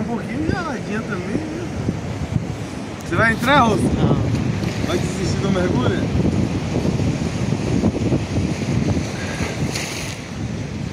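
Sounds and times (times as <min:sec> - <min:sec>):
sea washing: 0:00.0 - 0:10.9
wind buffeting microphone: 0:00.0 - 0:10.9.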